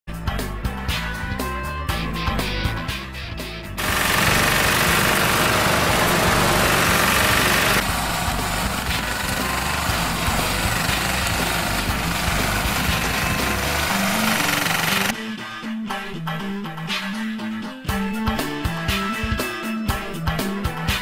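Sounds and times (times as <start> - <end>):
engine and machinery noise: 3.8 - 15.1.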